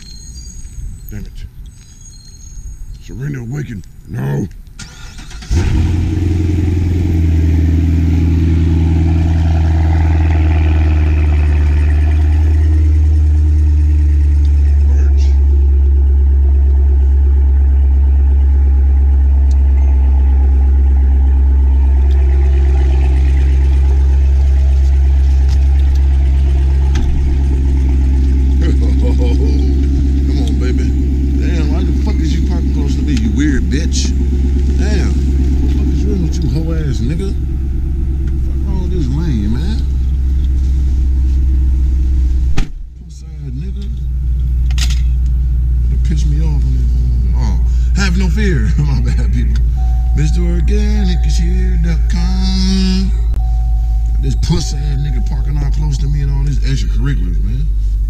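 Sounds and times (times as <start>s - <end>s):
car engine starting and idling: 3.0s - 58.0s.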